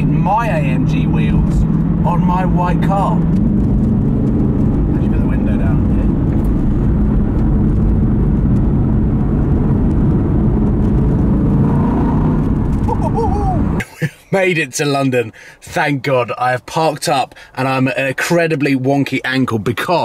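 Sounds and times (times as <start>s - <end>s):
car engine drone from cabin: 0.0s - 13.8s
tyre and road noise: 0.0s - 13.9s.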